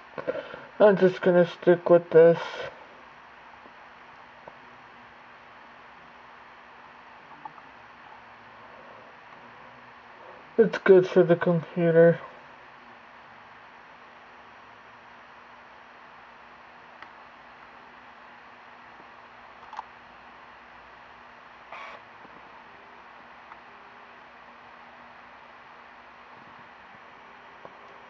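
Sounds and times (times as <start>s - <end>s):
room tone hiss: 0.0s - 28.0s.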